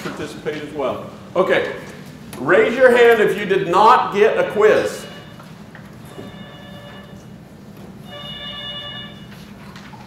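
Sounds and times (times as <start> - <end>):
phone ringtone ringing: 6.1 - 7.3, 8.0 - 9.4.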